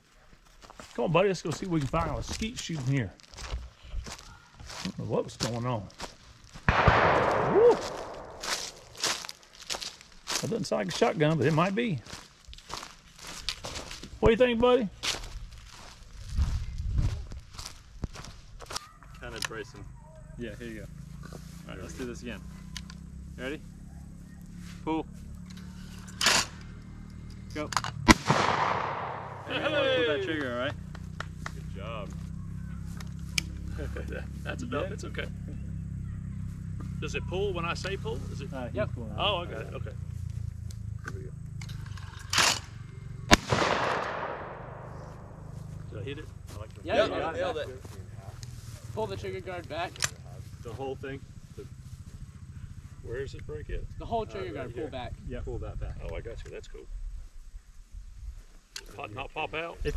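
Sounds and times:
footsteps on leafy dirt trail: 0.0 - 19.3, 44.8 - 49.7
shotgun shot echoing: 6.6 - 9.1, 28.1 - 29.6, 43.3 - 45.4.

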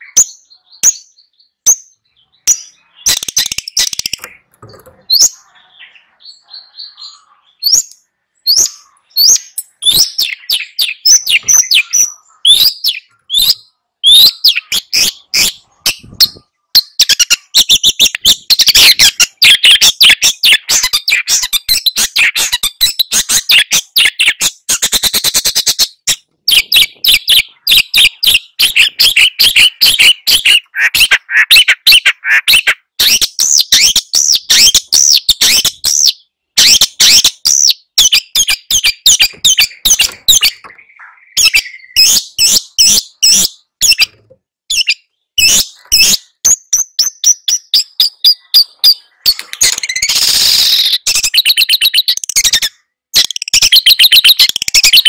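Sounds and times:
shrike singing chattering song: 0.0 - 24.6, 25.5 - 55.0.

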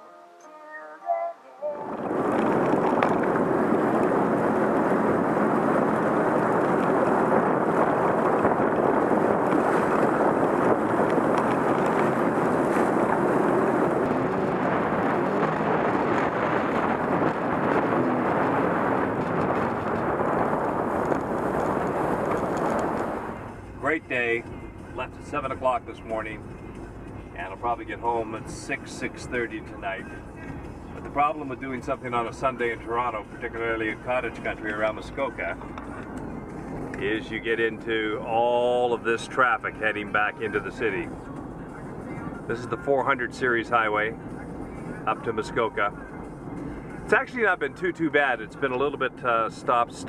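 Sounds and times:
music: 0.0 - 1.9, 23.4 - 37.6, 39.4 - 42.8, 43.5 - 47.1
personal watercraft running at speed: 1.8 - 24.0.

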